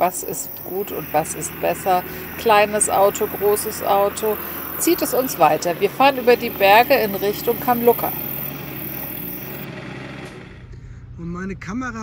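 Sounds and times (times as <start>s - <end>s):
high hiss: 0.0s - 9.6s
diesel truck engine running: 0.0s - 10.8s
tires on gravel track: 0.0s - 10.8s.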